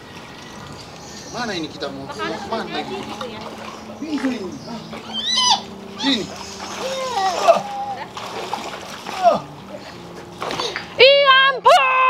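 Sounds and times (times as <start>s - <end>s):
water running off bowls: 0.0s - 11.0s
water splashing and pouring: 0.0s - 11.0s
plastic bowls scooping water: 2.5s - 11.0s.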